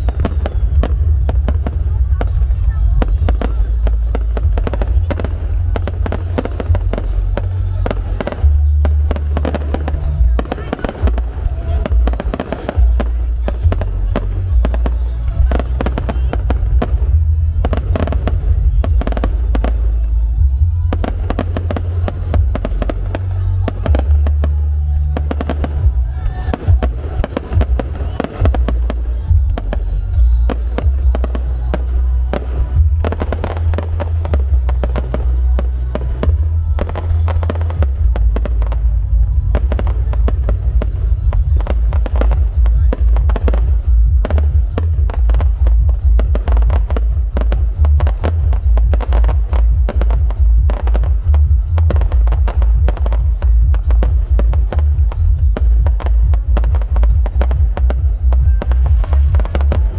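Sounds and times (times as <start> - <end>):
deep rumble: 0.0 - 59.9.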